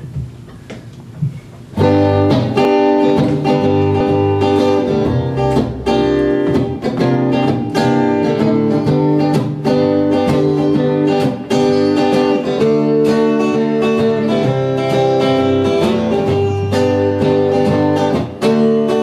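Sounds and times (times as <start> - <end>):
acoustic guitar strumming: 1.7 - 19.0
guitars playing: 1.7 - 19.0.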